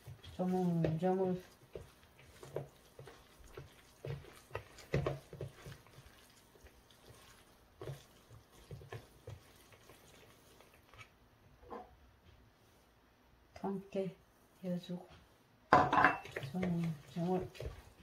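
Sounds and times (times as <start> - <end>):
wet squishing of kneaded greens: 0.0 - 11.6, 16.2 - 18.0.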